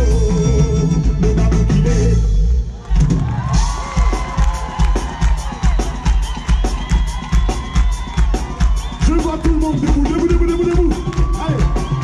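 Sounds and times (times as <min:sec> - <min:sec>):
live band with drum beat: 0:00.0 - 0:12.0
crowd cheering and whooping: 0:02.6 - 0:12.0.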